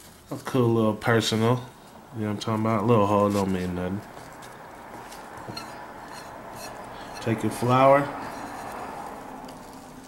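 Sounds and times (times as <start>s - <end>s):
faint rustling of dried leaf: 8.3s - 10.0s.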